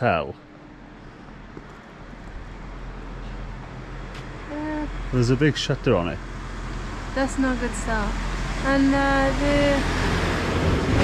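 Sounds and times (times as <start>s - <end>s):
steady street hiss: 0.0s - 10.9s.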